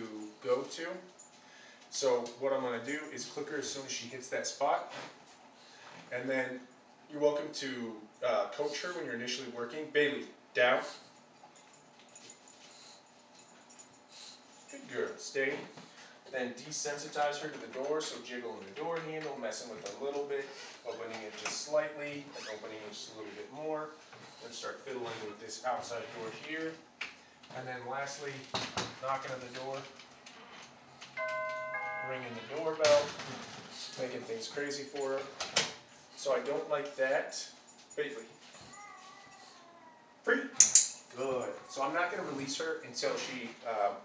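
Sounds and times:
two-note doorbell chime: 31.2 - 32.6.

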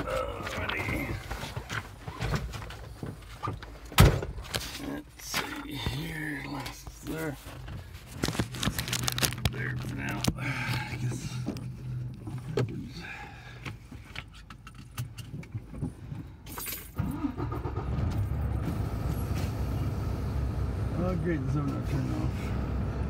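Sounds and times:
truck engine running: 17.0 - 23.0.

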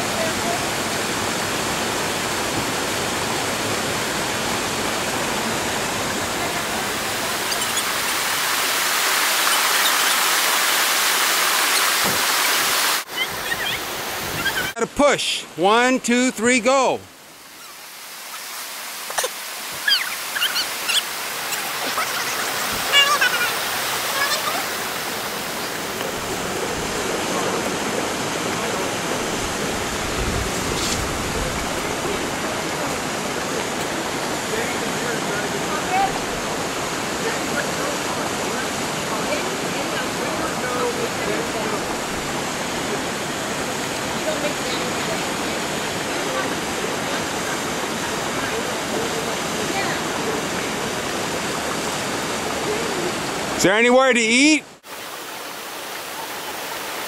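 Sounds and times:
waterfall rushing: 0.0 - 57.0.

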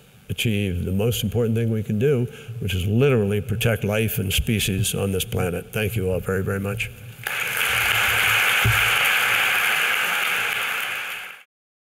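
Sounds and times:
audience applauding: 7.2 - 11.5.

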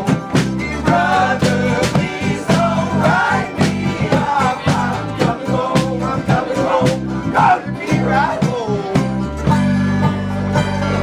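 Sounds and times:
several voices singing together: 0.0 - 9.0
strummed acoustic guitars: 0.0 - 11.0.

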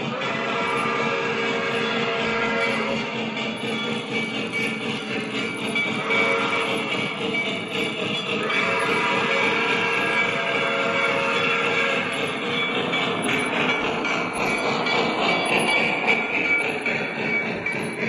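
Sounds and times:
metal wheels rolling on track: 0.0 - 18.0
model train steam sounds: 0.0 - 18.0
steady whistle tone: 0.0 - 18.0.

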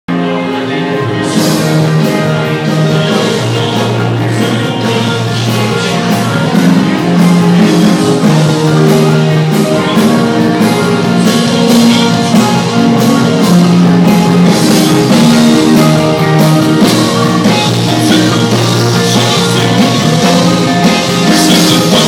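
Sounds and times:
live rock band playing: 0.1 - 22.0.

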